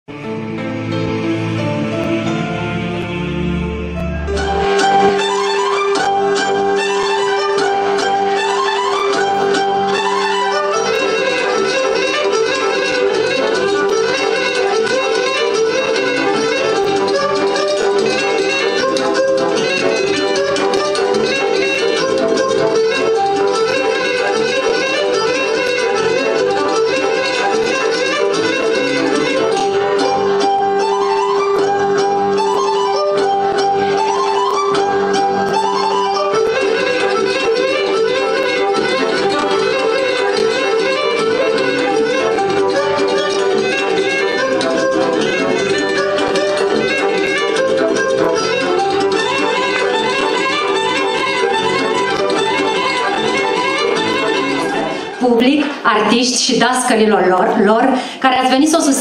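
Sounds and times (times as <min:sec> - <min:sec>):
folk dance music with fiddle: 0:00.1 - 0:59.0.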